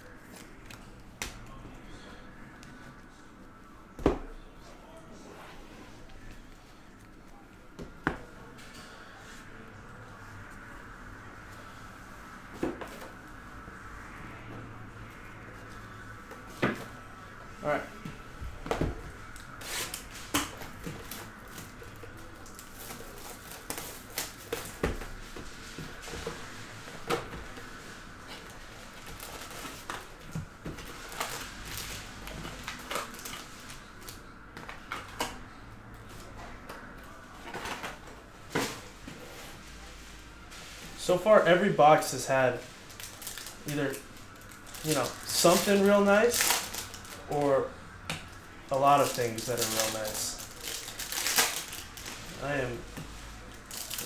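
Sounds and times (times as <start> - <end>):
faint steady hum: 0.0 - 54.0
foil packs crinkling: 42.8 - 47.4, 48.8 - 52.6, 53.5 - 54.0.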